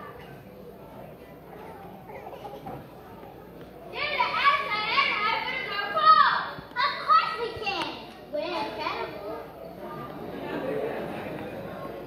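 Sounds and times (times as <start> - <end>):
children shouting: 4.0 - 7.8.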